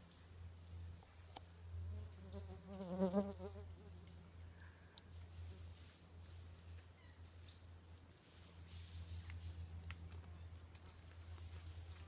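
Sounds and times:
flying insect buzzing: 0:02.0 - 0:03.6.

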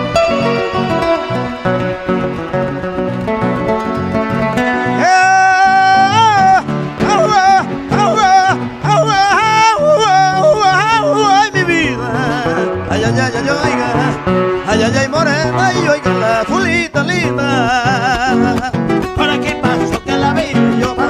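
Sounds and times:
acoustic guitar playing: 0:00.0 - 0:21.0
man singing long wavering notes: 0:05.0 - 0:18.6.

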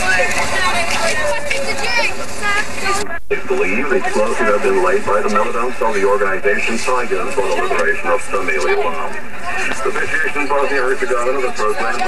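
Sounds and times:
man reading news over loudspeaker: 0:02.9 - 0:12.0.

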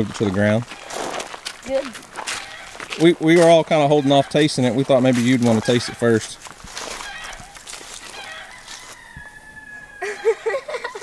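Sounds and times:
rooster crowing: 0:02.3 - 0:02.8, 0:07.0 - 0:11.0.

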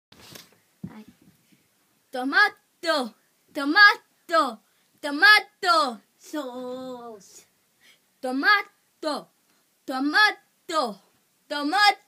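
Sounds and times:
faint breathy sounds: 0:04.1 - 0:05.0, 0:07.1 - 0:08.2.

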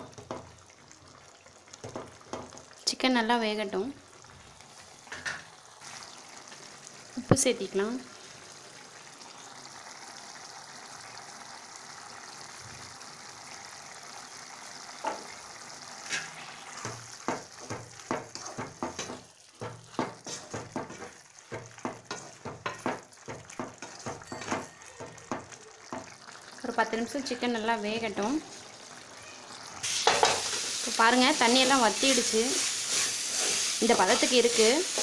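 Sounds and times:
food sizzling in a metal pot: 0:00.0 - 0:35.0
wooden spatula scraping a pot: 0:16.0 - 0:26.1, 0:31.6 - 0:35.0.

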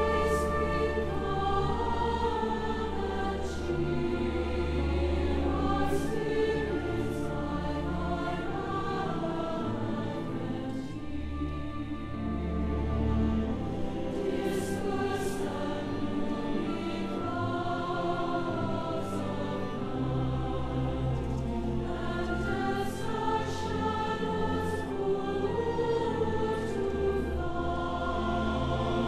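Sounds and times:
choir singing held chords: 0:00.0 - 0:29.0.

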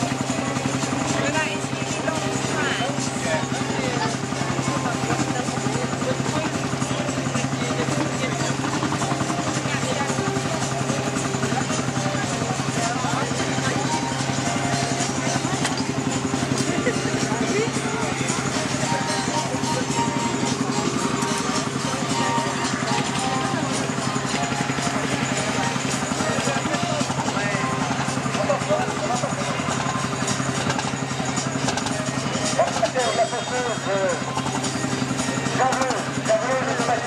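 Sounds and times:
music: 0:00.0 - 0:37.0
old stationary engine running: 0:00.0 - 0:37.0
voices: 0:00.0 - 0:37.0.

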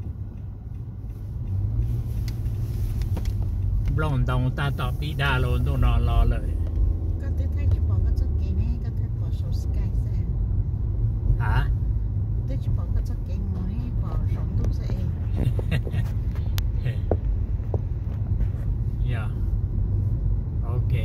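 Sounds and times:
car cabin rumble: 0:00.0 - 0:21.0.

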